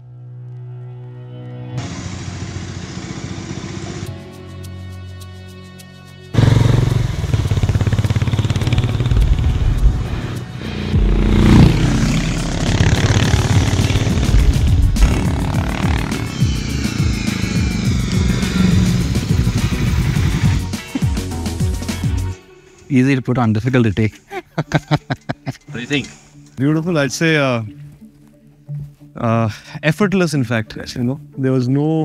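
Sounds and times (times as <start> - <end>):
background music: 0.0 - 2.6, 3.6 - 32.0
motorcycle engine: 1.8 - 4.3, 6.4 - 22.0.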